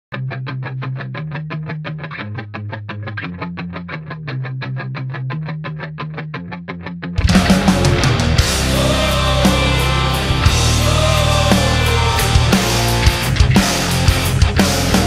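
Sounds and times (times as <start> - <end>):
guitar picking quick notes: 7.2 - 15.0
rock band with drums: 7.2 - 15.0.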